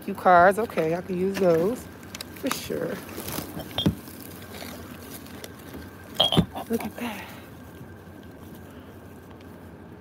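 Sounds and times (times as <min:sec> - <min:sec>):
plastic and cardboard rustling: 0:02.4 - 0:07.0.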